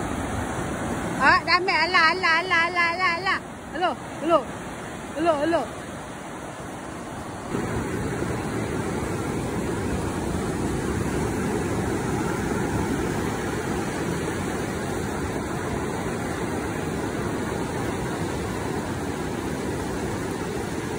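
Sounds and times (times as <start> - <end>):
ocean surf: 0.0 - 20.9.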